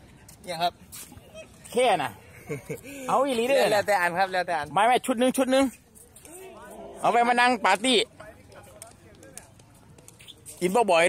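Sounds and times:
players calling out: 6.2 - 8.0.

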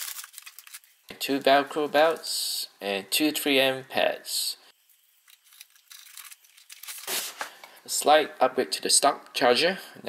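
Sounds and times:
packaging rustling and scraping: 0.0 - 1.0, 5.3 - 7.6.

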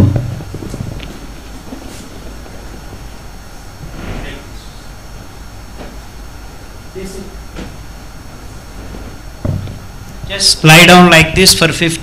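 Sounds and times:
low steady hum: 0.0 - 12.0
loud thump: 9.4 - 9.8.

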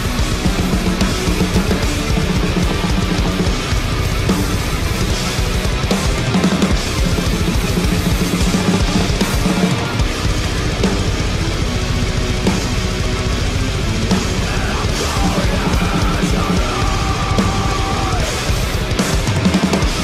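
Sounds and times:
distorted guitars: 0.0 - 20.0
drum kit played hard: 0.0 - 20.0.

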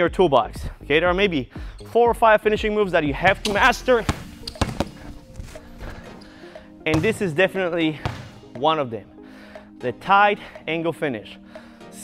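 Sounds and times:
background music: 0.0 - 12.0
basketball bouncing on wooden floor: 3.2 - 6.2, 6.9 - 7.3, 8.0 - 8.4.

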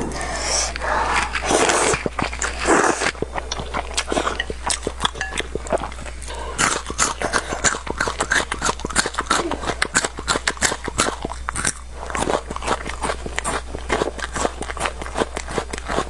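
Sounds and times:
slurping noodles: 0.0 - 3.3
wet chewing clicks: 0.7 - 16.0.

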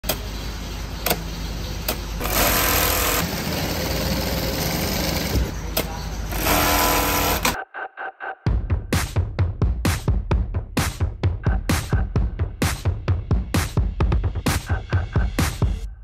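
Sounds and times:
sharp clicks: 1.0 - 2.6
industrial sewing machine stitching: 2.2 - 5.5, 6.3 - 7.6.

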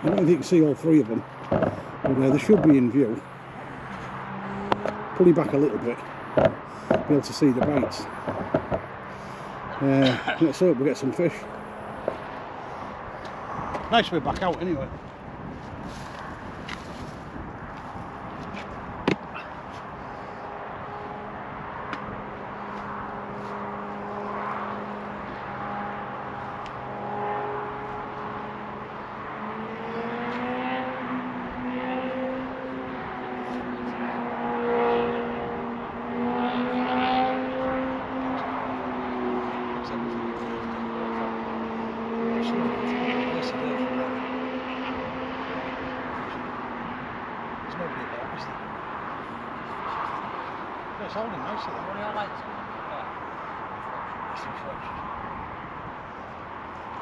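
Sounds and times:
engine humming: 0.0 - 13.8.

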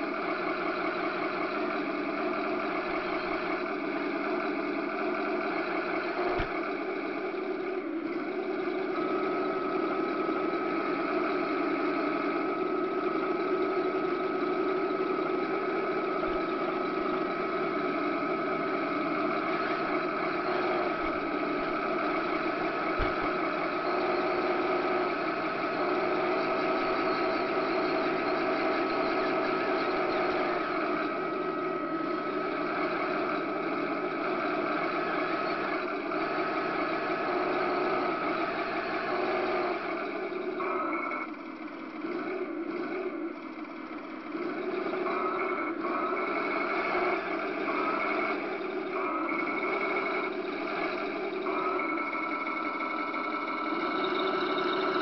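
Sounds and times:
high whine: 0.0 - 55.0
toy tank mechanical drone: 0.0 - 55.0.

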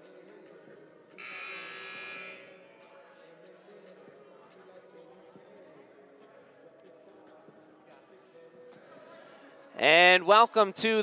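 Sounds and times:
faint crowd murmur: 0.0 - 9.8
scoreboard horn buzzing: 1.2 - 2.6.

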